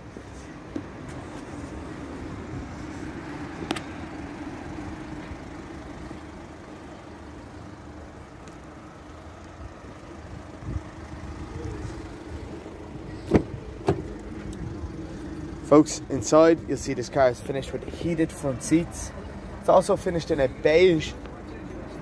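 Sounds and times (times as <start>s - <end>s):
car door unlatching clicks: 3.6s - 4.0s, 13.1s - 14.7s.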